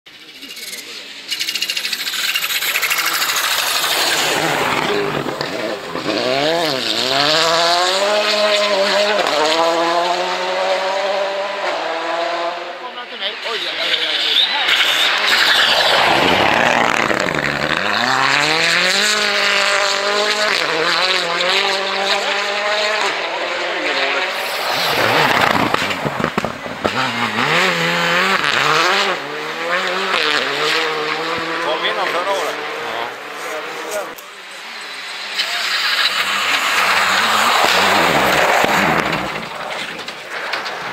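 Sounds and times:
rally cars passing revving: 0.1s - 40.9s.

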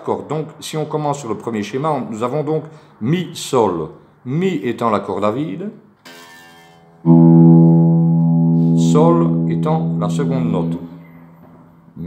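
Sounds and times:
electric guitar low string ringing: 7.0s - 12.0s.

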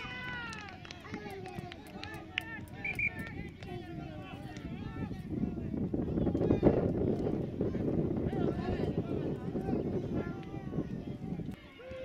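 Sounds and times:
people shouting outdoors: 0.0s - 6.8s, 7.5s - 12.0s.

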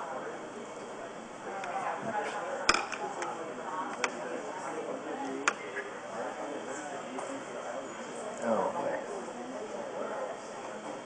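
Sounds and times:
background conversation: 0.0s - 11.0s.

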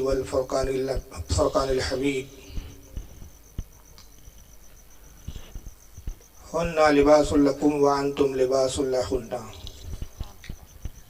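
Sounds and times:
cricket chirping: 0.0s - 11.0s.

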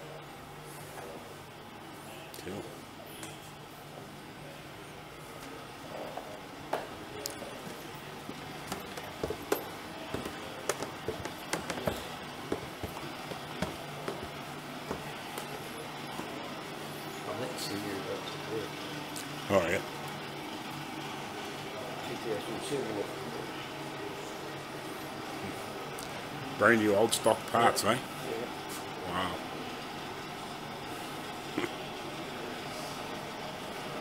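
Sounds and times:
steady low hum: 0.0s - 34.0s
faint clicks and knocks: 8.3s - 15.6s.

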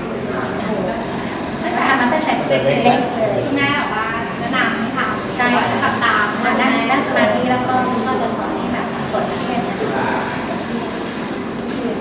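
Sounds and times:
loud background din: 0.0s - 12.0s
woman talking: 0.2s - 10.4s.

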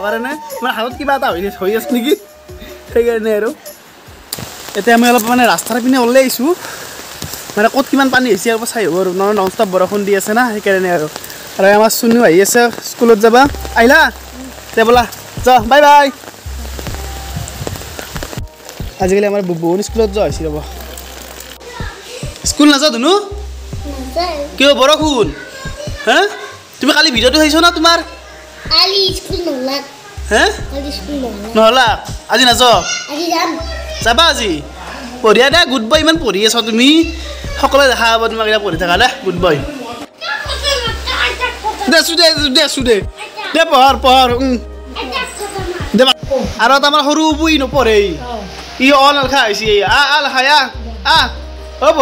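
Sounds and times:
background music: 0.0s - 52.0s
rain on paved path: 1.3s - 52.0s
rain pattering on umbrella: 3.9s - 33.5s
children's voices at play: 21.5s - 35.8s, 36.6s - 46.5s.

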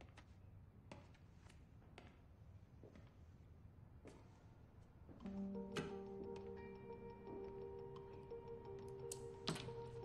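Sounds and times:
sustained film score notes: 5.2s - 10.0s
fast clock-like ticking: 5.3s - 10.0s.

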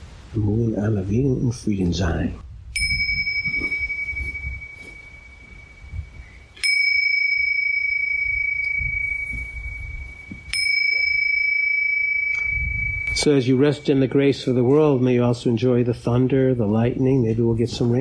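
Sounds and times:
meditation bell ringing: 2.7s - 15.3s.

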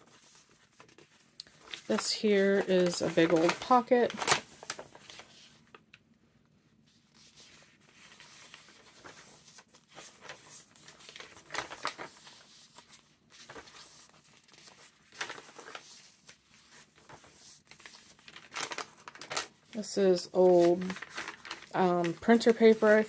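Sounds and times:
loud page flips: 0.0s - 5.8s, 6.9s - 23.0s
paper pages rustling and crinkling: 0.0s - 5.9s, 6.6s - 23.0s.

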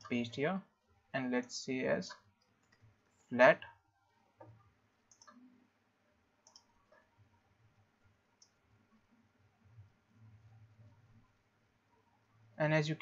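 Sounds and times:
computer keys and mouse clicks: 4.4s - 5.4s, 6.4s - 7.1s.

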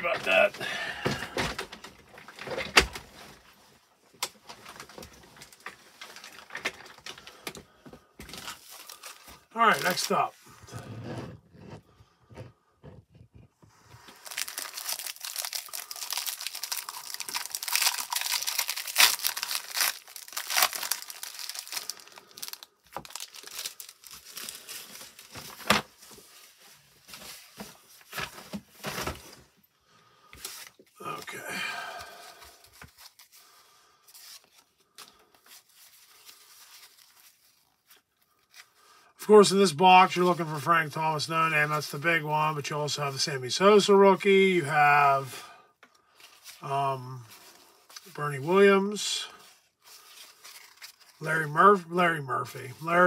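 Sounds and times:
cellophane wrapper tearing and crinkling: 8.4s - 10.3s, 14.0s - 26.5s, 32.2s - 38.9s, 49.8s - 51.2s.

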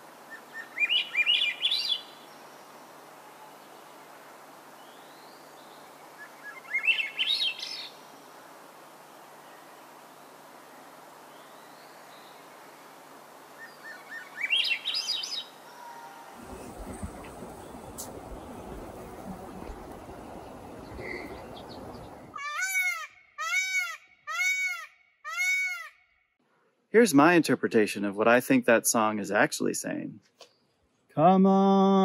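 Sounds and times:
peacock calls: 13.6s - 26.0s
thrush singing whistled notes: 16.4s - 22.4s.

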